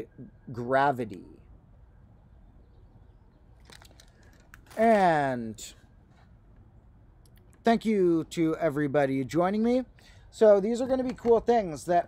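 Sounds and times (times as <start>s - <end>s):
packaging clicks and crinkles: 3.6s - 4.8s.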